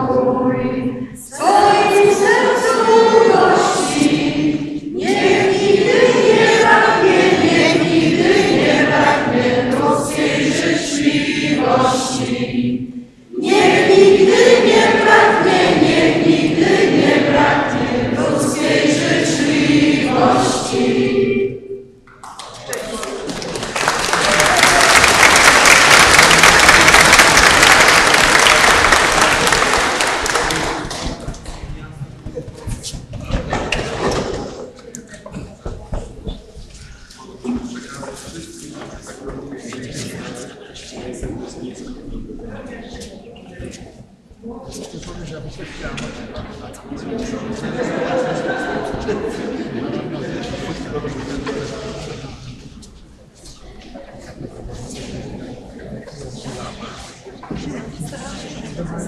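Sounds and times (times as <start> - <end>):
congregation singing: 0.0 - 31.9, 33.4 - 59.0
applause: 22.2 - 31.5
crowd murmur: 22.5 - 59.0.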